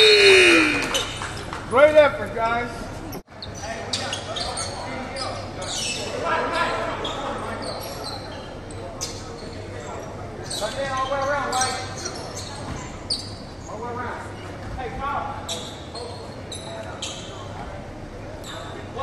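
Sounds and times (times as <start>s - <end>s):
voices calling out echoing: 0.0s - 19.0s.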